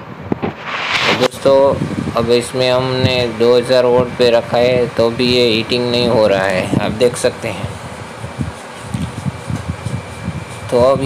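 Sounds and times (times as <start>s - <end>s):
cooling fan running: 1.4s - 11.0s.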